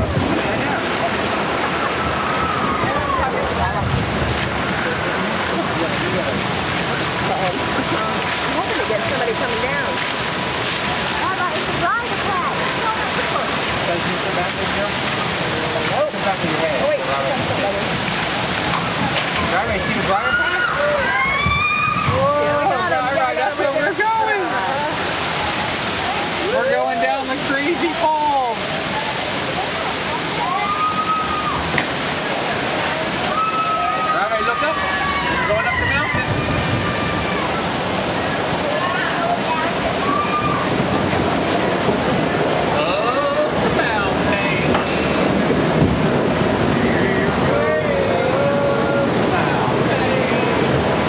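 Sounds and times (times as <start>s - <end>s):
faint voices: 0.0s - 51.0s
rush of falling water: 0.0s - 51.0s.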